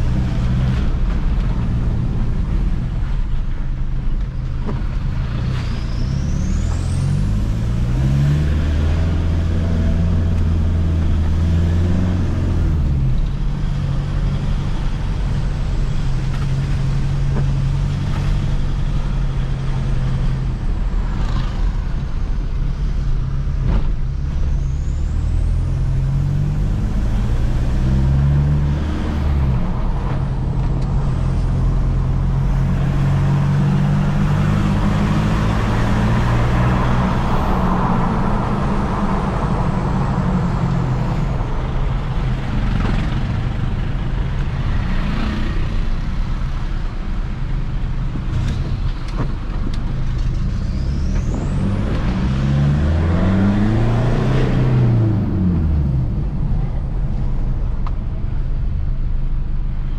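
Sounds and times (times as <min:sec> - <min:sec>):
car engine while driving: 0:00.0 - 0:59.9
road noise: 0:00.0 - 0:59.9.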